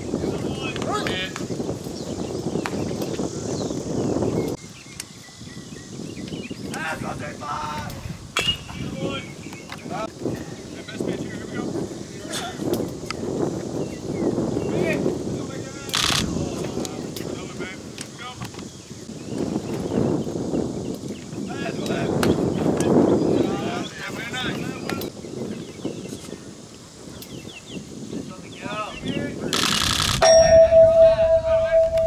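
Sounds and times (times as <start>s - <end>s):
voices of players and spectators: 0.0s - 1.7s, 6.6s - 19.0s, 20.8s - 29.6s
harsh metallic clang: 30.2s - 32.0s
steady metallic ring: 30.2s - 32.0s.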